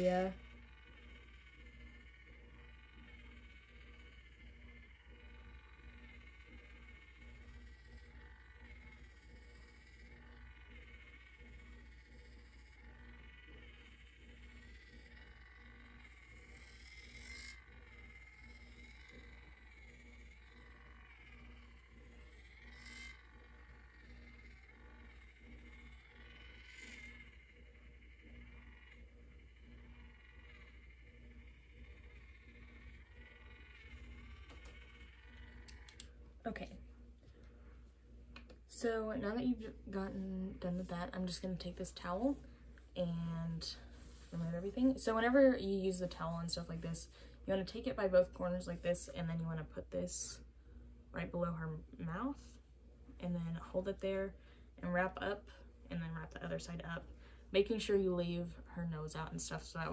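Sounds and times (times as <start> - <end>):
cleansing brush humming: 0.0 - 59.9.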